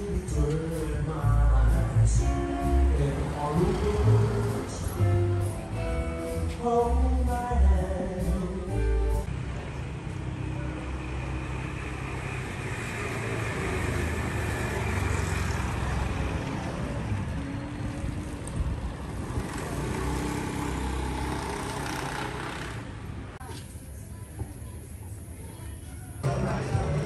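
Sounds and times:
vehicles passing: 0.0 - 27.0
faint voices: 23.3 - 27.0.

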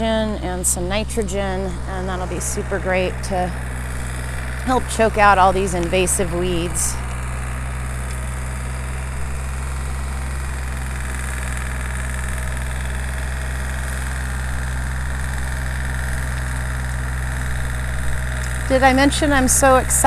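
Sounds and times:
tractor engine droning: 0.0 - 20.0.

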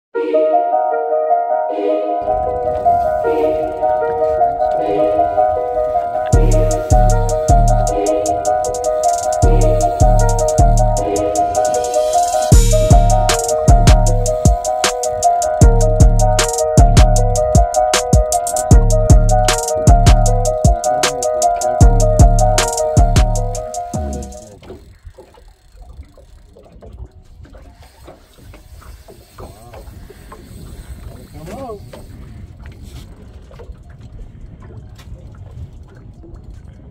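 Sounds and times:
background music: 0.2 - 24.5
melody of held notes: 0.2 - 24.5
wind and water rumble: 1.6 - 36.9
fishing reel cranking: 6.3 - 18.7.

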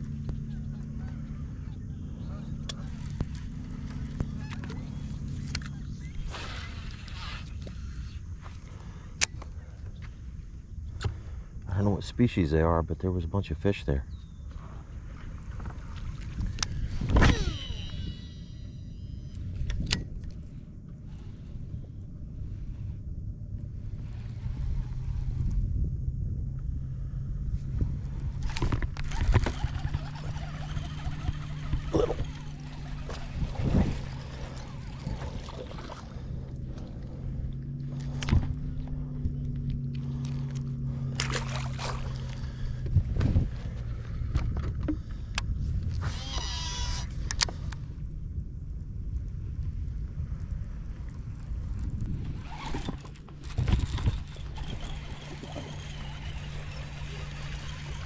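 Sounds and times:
boat motor humming: 0.0 - 11.2, 14.2 - 58.0.

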